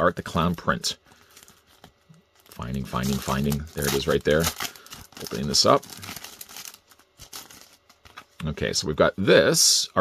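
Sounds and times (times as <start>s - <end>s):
plastic bag crinkling: 0.3s - 8.3s.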